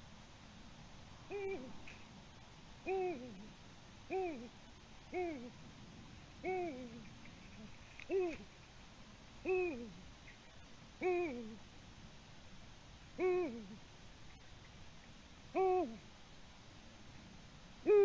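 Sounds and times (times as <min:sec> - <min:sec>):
owl hooting: 0:01.3 - 0:01.8, 0:02.9 - 0:03.5, 0:04.1 - 0:04.5, 0:06.4 - 0:07.0, 0:08.1 - 0:08.4, 0:09.4 - 0:10.0, 0:11.0 - 0:11.6, 0:13.2 - 0:13.8, 0:15.5 - 0:16.1.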